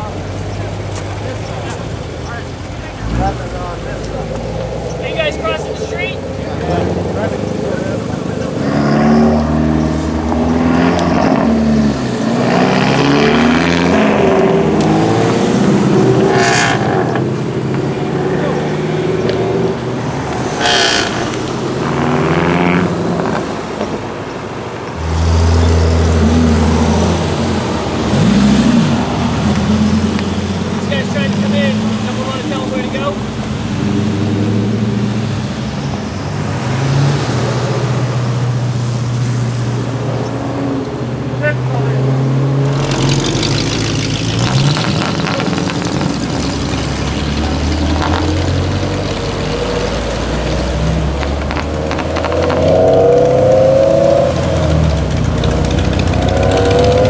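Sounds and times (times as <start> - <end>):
sports car engines revving: 0.0 - 57.0.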